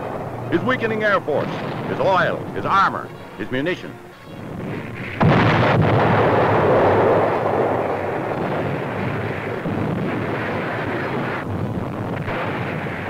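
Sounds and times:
loud explosion blast: 0.0s - 3.6s, 4.3s - 13.0s
rumble of explosions: 0.0s - 13.0s.

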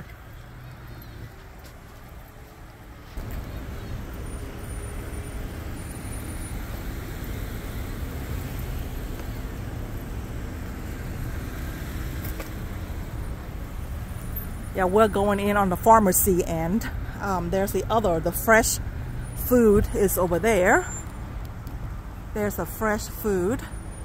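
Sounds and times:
cars moving: 0.0s - 24.0s.

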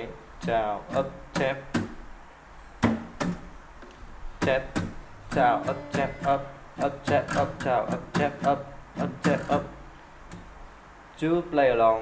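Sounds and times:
damped strums on guitar strings: 0.4s - 2.0s, 4.4s - 9.8s.

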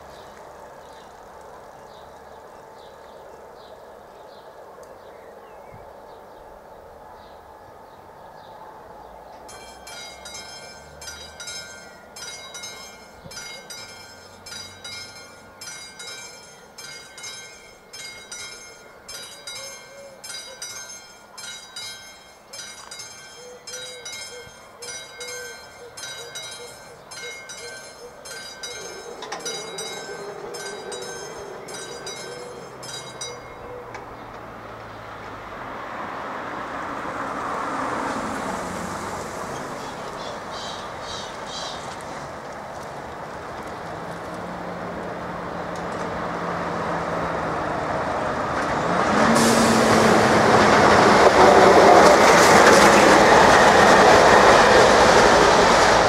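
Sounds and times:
level crossing bell ringing: 9.5s - 33.8s
car driving past: 34.1s - 40.8s, 44.4s - 56.0s.

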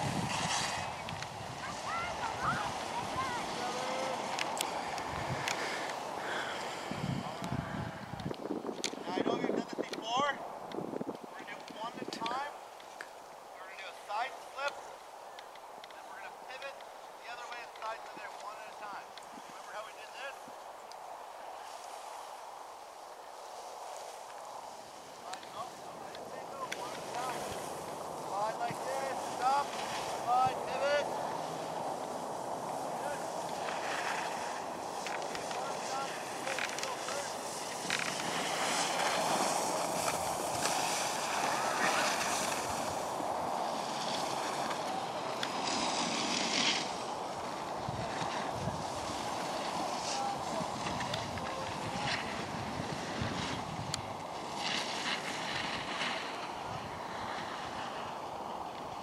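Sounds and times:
wind noise on microphone: 0.0s - 12.6s, 20.4s - 59.0s
skis scraping over snow: 0.0s - 59.0s.

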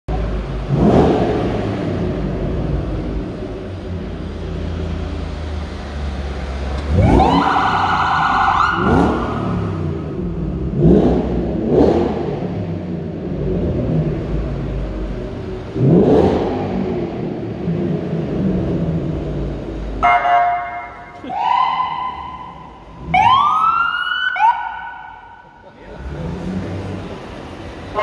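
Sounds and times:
car engines rumbling: 0.1s - 28.0s
police siren whooping: 6.9s - 9.7s, 21.0s - 25.5s.

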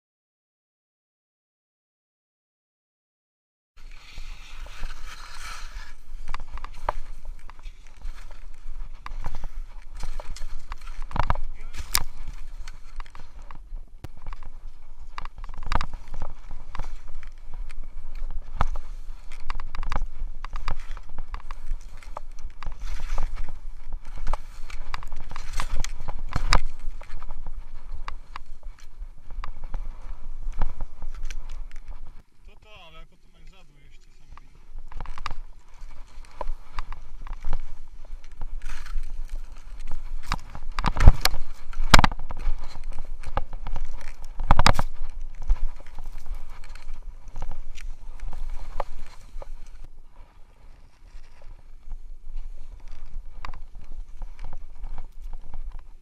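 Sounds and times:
wind on microphone: 3.8s - 32.4s, 33.9s - 56.0s
skis scraping through snow: 3.8s - 56.0s.

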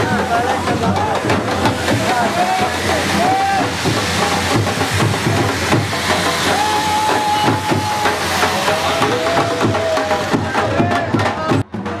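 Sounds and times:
sparklers hissing and crackling: 0.0s - 10.9s.

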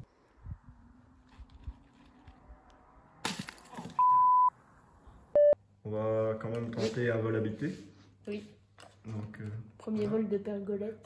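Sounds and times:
electronic beeps: 4.0s - 4.6s.

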